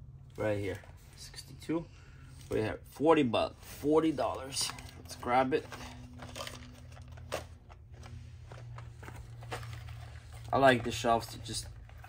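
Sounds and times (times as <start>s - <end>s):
cardboard and plastic rustling: 2.3s - 12.0s.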